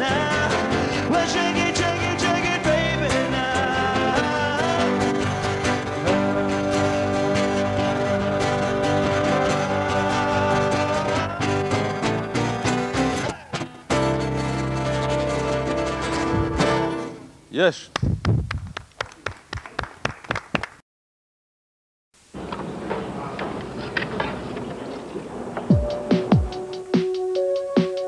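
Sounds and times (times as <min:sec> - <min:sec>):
man singing: 0:00.0 - 0:12.1
strummed acoustic guitars: 0:00.0 - 0:17.4
keyboard: 0:24.4 - 0:28.0.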